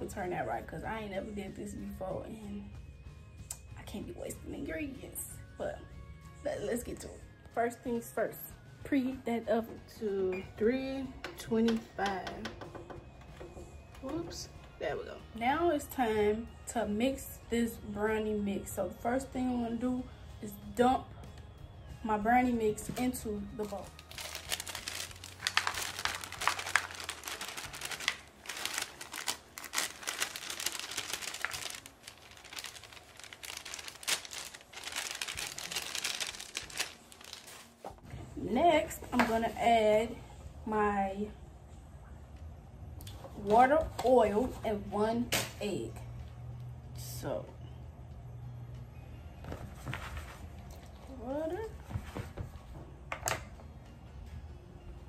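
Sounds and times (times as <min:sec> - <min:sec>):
bag crinkling: 0:23.6 - 0:37.9.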